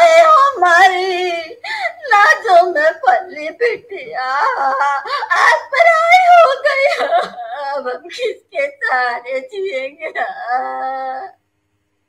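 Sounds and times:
woman wailing in acted crying: 0:04.0 - 0:11.4.

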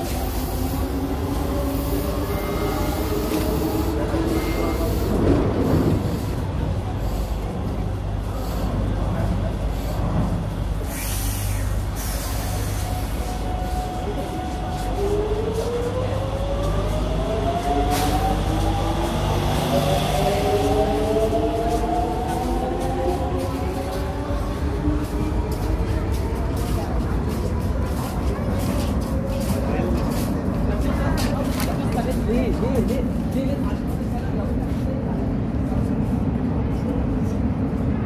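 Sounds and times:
faint voices: 0:00.0 - 0:38.0
low train rumble: 0:00.0 - 0:38.0
air brakes hissing: 0:10.8 - 0:13.4.

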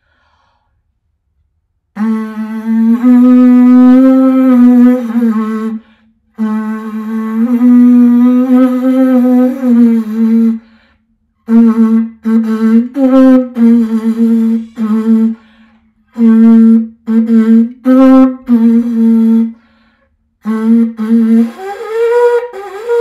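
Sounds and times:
conch shell horn melody: 0:02.0 - 0:10.7, 0:11.4 - 0:19.8, 0:20.4 - 0:23.0.

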